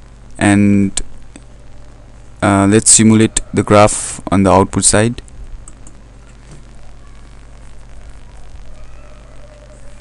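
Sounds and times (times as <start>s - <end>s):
low electrical hum with hiss: 0.0s - 10.0s.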